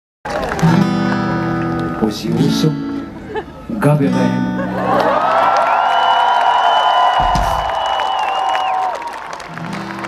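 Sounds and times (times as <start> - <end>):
brief low thump: 7.2 - 7.8.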